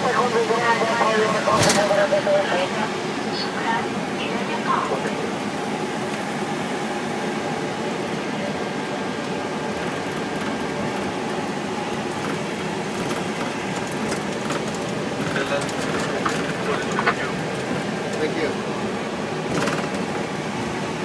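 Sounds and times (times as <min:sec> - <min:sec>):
engine noise: 0:00.0 - 0:21.0.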